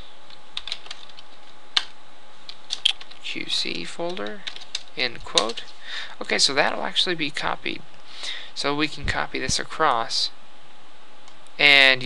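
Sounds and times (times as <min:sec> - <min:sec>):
computer keyboard keystrokes: 0:00.3 - 0:01.9, 0:02.5 - 0:03.2, 0:04.1 - 0:05.7.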